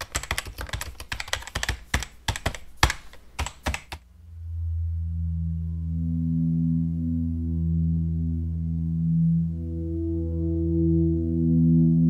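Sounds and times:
keyboard typing clicks: 0.0 - 4.0
low droning tone: 4.1 - 12.0.

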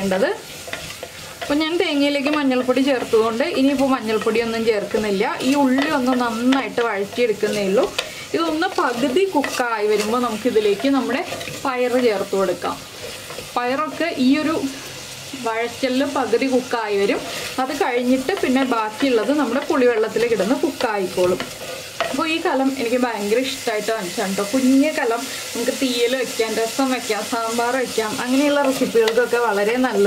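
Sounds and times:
food sizzling in oil: 0.0 - 30.0
wooden spatula scraping pot: 0.4 - 14.2.

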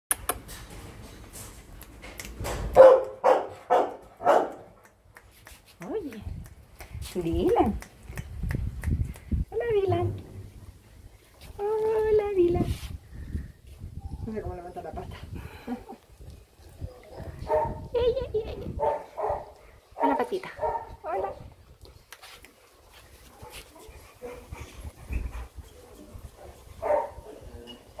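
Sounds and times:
dog barking: 2.8 - 4.7, 17.5 - 17.8, 18.8 - 21.4, 26.8 - 27.4
rubbing noise from handling: 9.8 - 13.0, 22.1 - 28.0.

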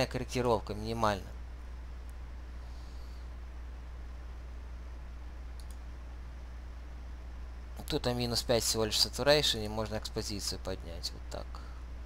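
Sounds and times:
low electrical hum: 0.0 - 12.0
computer mouse clicks: 5.5 - 5.9.

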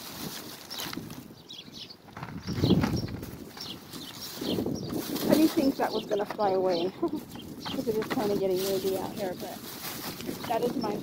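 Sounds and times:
wind gusting on microphone: 0.0 - 11.0
rustling and knocking of items: 2.1 - 11.0.

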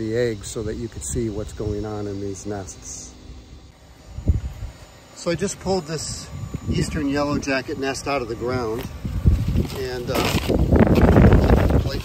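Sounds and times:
wind rumble: 3.3 - 5.0, 6.2 - 12.0
microphone handling noise: 4.1 - 4.8, 8.7 - 12.0.

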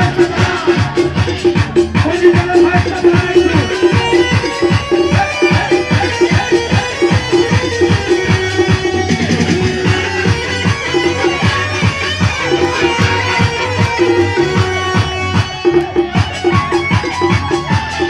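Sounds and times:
fast drumbeat: 0.0 - 18.0
keyboard melody: 0.0 - 18.0.

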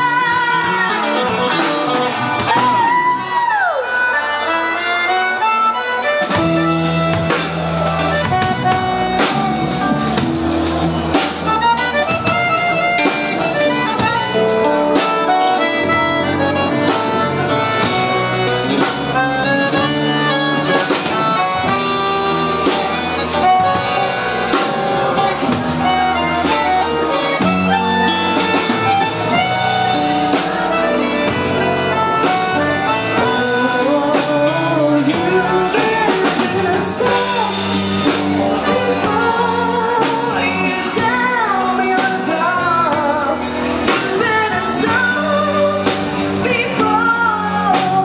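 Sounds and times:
drum kit: 0.0 - 48.0
electric guitar: 0.0 - 48.0
accordion melody: 3.8 - 48.0.

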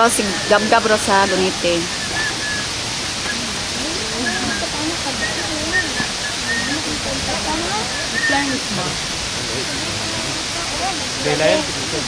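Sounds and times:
people talking faintly: 0.0 - 12.0
steady rushing hiss: 0.0 - 12.0.

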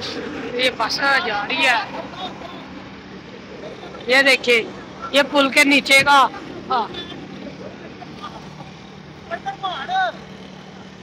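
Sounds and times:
vehicle engine and road noise: 0.0 - 11.0
man speaking: 0.6 - 2.8, 9.2 - 10.2.

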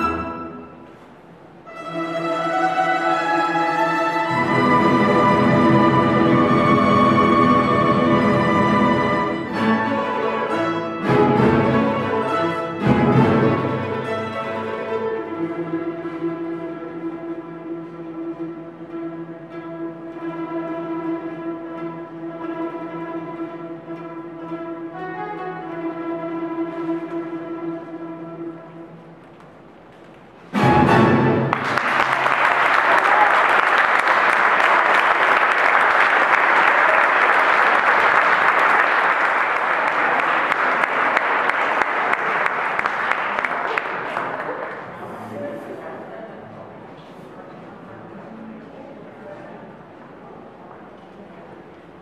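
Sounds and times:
plucked-string orchestra chord: 0.0 - 0.9, 1.7 - 28.9
audience applause: 31.0 - 45.0.

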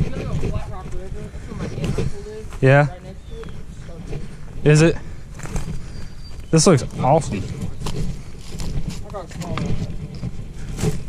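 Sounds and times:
footsteps on rocks: 0.0 - 11.0
wind buffeting microphone: 0.0 - 11.0.

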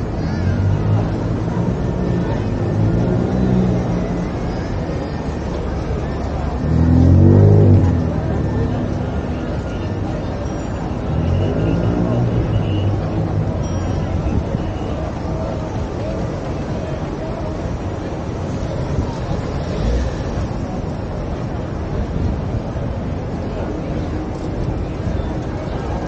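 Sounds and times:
people's voices: 0.0 - 26.0
traffic noise: 0.0 - 26.0
vehicle engine revving or passing: 6.5 - 9.0.

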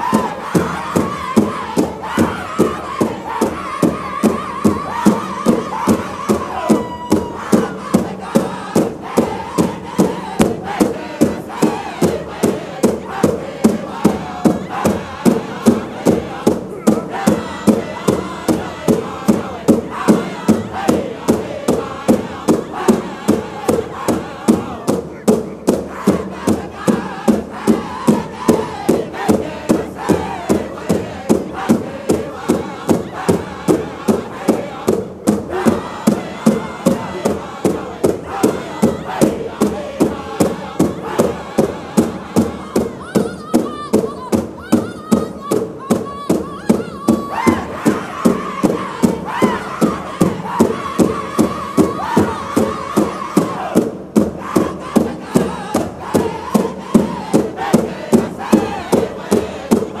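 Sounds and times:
big drum steady beat: 0.0 - 60.0
group singing at high pitch: 0.0 - 60.0.

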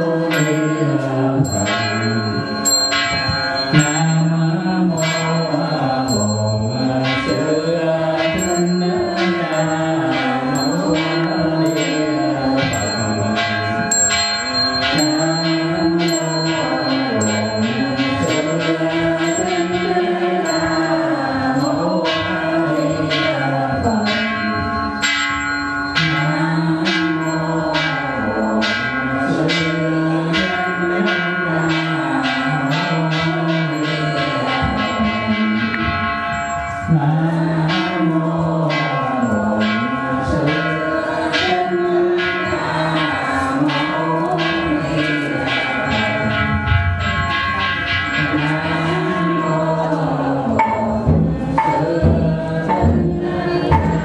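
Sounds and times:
bell struck rhythmically: 0.0 - 54.0
melody chanted: 0.0 - 54.0.

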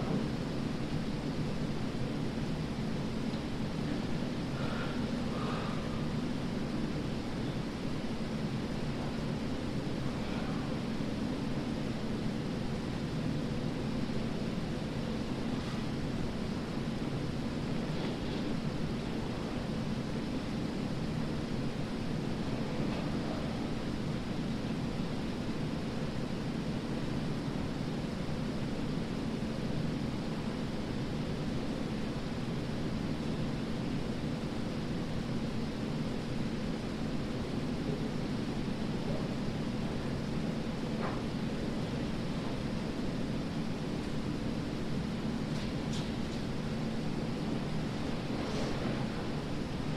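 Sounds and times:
faint constant hum: 0.0 - 49.9.

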